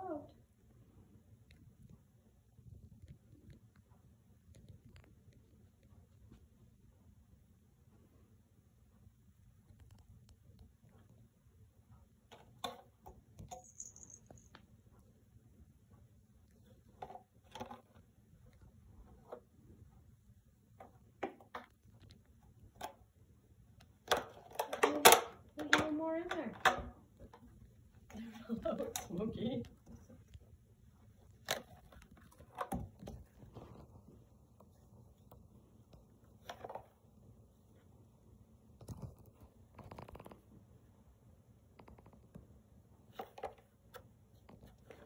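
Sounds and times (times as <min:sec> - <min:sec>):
person talking: 0:00.0 - 0:00.4, 0:24.8 - 0:27.0, 0:28.1 - 0:29.9.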